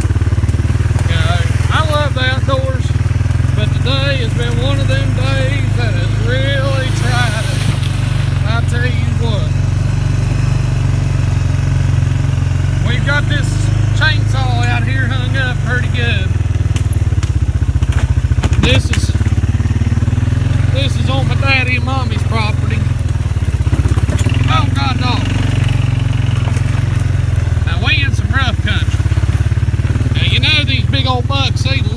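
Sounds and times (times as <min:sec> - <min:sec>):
atv engine droning: 0:00.0 - 0:31.9.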